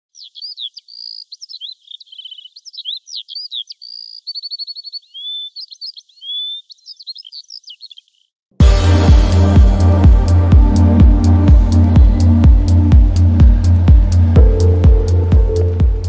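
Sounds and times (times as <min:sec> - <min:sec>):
bird song chirps and whistles: 0:00.1 - 0:08.2.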